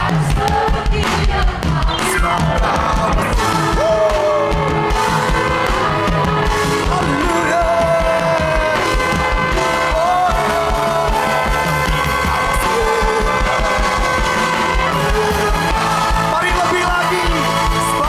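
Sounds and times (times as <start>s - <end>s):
voices singing: 0.0s - 18.0s
worship band playing: 0.0s - 18.0s
keyboard chords: 1.7s - 18.0s.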